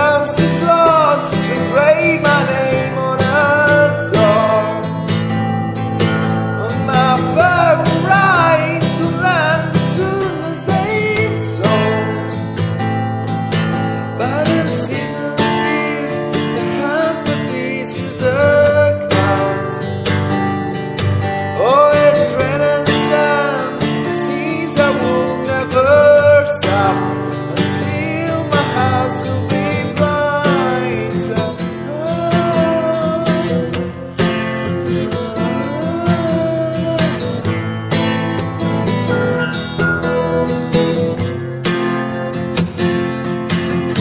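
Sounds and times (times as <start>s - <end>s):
person singing: 0.0s - 5.1s, 6.4s - 12.6s, 14.1s - 20.0s, 21.6s - 34.1s, 34.7s - 37.6s
acoustic guitar: 0.0s - 44.0s.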